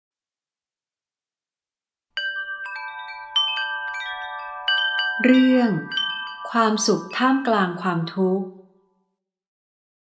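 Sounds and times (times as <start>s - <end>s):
chimes ringing: 2.2s - 7.8s.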